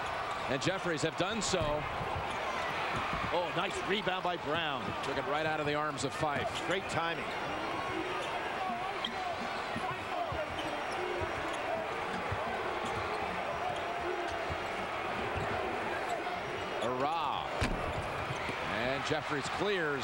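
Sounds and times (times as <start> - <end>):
arena crowd noise: 0.0 - 20.0
sneaker squeaks: 8.2 - 14.5.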